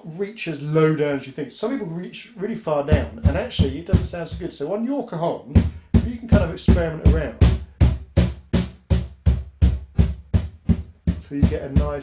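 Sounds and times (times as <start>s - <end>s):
cajon bass hits: 2.9s - 4.6s, 5.6s - 12.0s.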